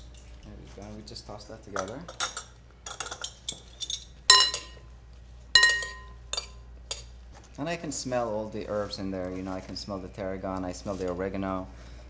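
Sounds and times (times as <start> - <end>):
metal utensils clinking glass bowl: 1.8 - 4.8, 5.6 - 7.1.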